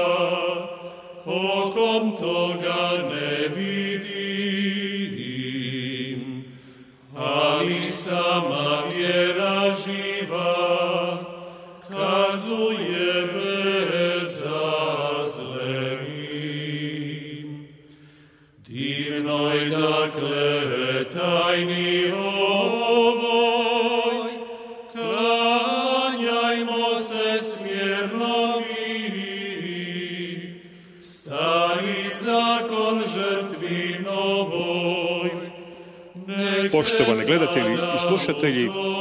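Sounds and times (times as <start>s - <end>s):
singers breathing: 0.7s - 1.2s, 6.4s - 7.1s, 11.3s - 11.9s, 17.8s - 18.7s, 24.4s - 24.9s, 30.6s - 31.0s, 35.6s - 36.2s
male voices chanting in unison: 36.2s - 39.0s.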